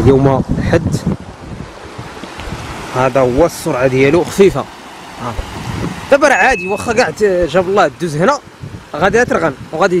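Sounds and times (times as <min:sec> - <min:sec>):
wind buffeting microphone: 0:00.0 - 0:10.0
floodwater rushing: 0:01.3 - 0:10.0.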